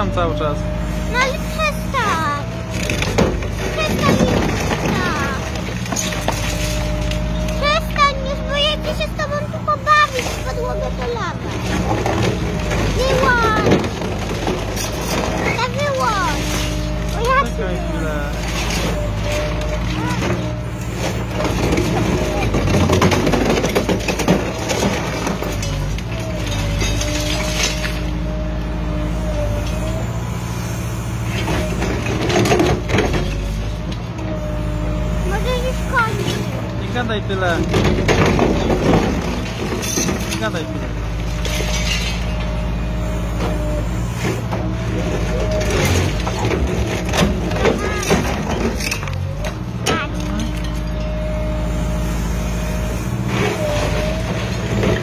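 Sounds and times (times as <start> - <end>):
excavator diesel engine and hydraulics: 0.0 - 55.0.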